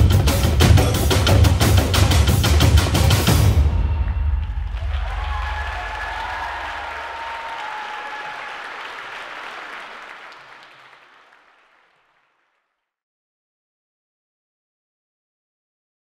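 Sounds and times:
carnival drumming: 0.0 - 6.8
faint pitched cheer: 4.0 - 11.4
audience applauding: 4.1 - 12.7.

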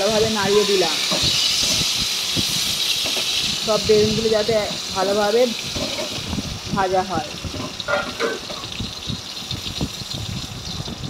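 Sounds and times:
frying in oil with pops: 0.0 - 11.0.

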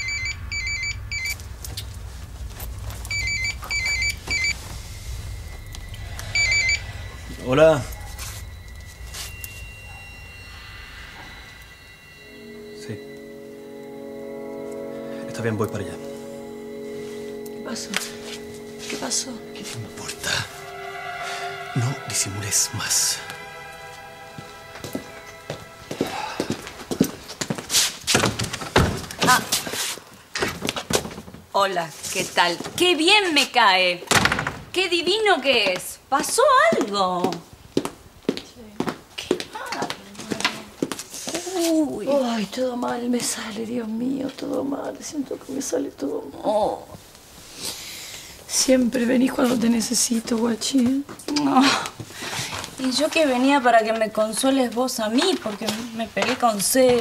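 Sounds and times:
brief rushing noise: 0.0 - 12.5
phone warbling ringtone: 6.0 - 27.0
footsteps of hard-soled shoes: 24.3 - 31.4, 35.5 - 41.8, 55.2 - 57.0.

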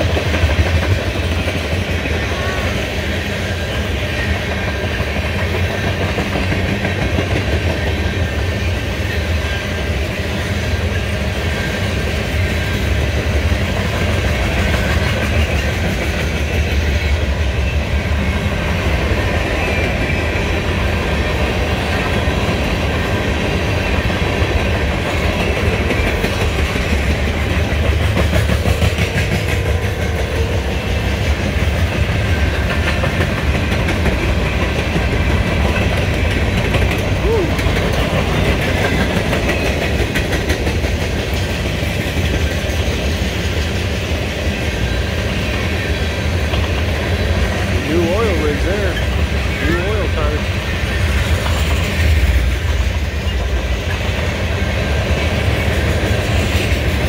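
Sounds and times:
freight train rumbling past: 0.0 - 57.0
steel wheels clattering over rails: 0.0 - 57.0.

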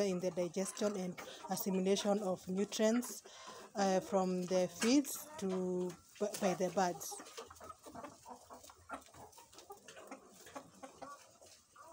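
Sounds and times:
hens clucking softly: 0.0 - 11.9.

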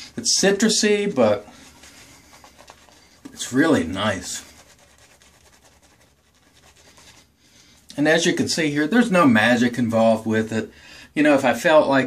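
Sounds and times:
shaving brush scratching skin: 1.5 - 7.3.

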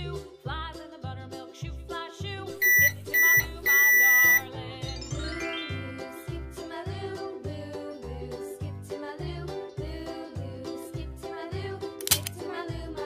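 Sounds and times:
upbeat children's music: 0.0 - 13.0
electronic beeps: 2.6 - 4.5.

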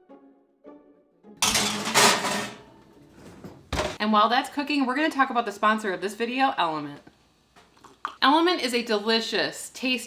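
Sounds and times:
baking sheet scraping on oven rack: 1.5 - 3.9.

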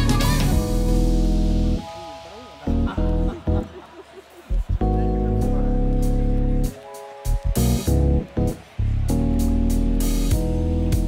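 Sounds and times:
guitar and bass music: 0.0 - 1.9, 2.7 - 3.8, 4.5 - 11.0.

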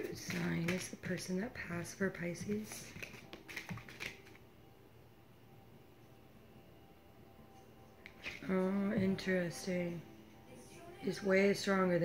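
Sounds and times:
cards being shuffled: 0.0 - 1.4, 2.2 - 4.4.

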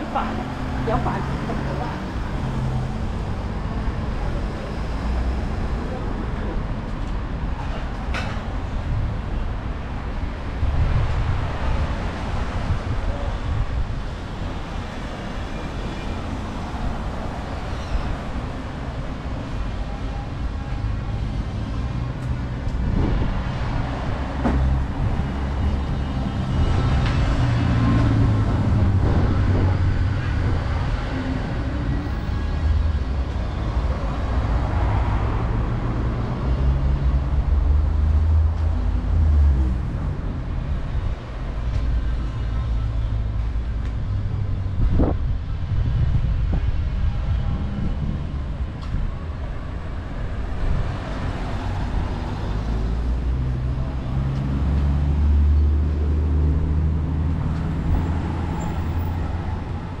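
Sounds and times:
cars passing: 0.0 - 60.0.

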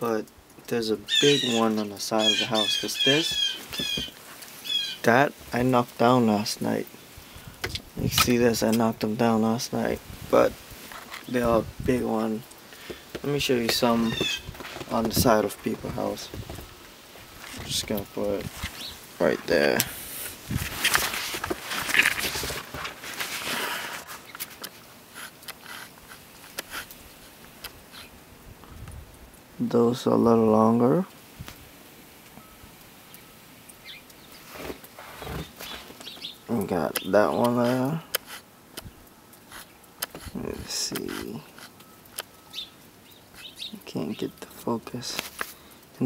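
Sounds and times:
small birds chirping: 0.7 - 20.9, 24.1 - 28.2, 32.4 - 45.0
footsteps crunching in snow: 13.2 - 24.6, 34.4 - 36.3
heavy jacket rustling: 13.5 - 24.3.

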